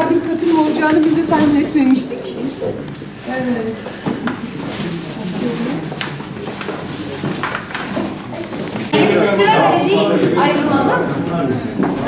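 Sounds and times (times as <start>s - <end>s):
murmur of people talking: 0.0s - 12.0s
clicks and rustles of handling: 0.2s - 8.9s.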